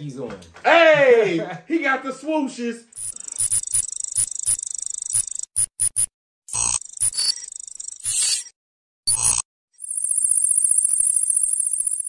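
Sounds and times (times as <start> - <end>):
glitchy blips: 3.0 - 8.5, 9.1 - 9.4
synthetic whine with clicks: 3.0 - 8.5, 9.1 - 9.4.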